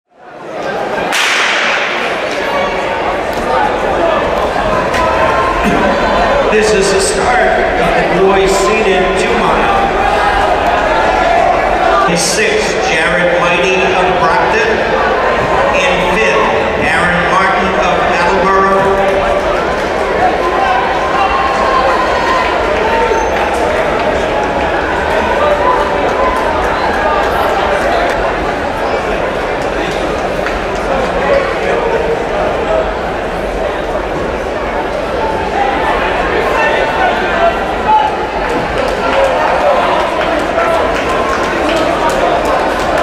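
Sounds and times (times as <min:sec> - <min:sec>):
crowd hubbub: 0:00.0 - 0:43.0
indistinct voices echoing: 0:00.5 - 0:43.0.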